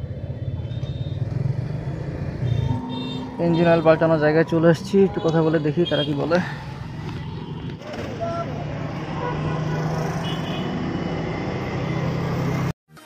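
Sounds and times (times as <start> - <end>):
vehicle engine humming: 0.0 - 12.7
road and traffic noise: 0.0 - 12.8.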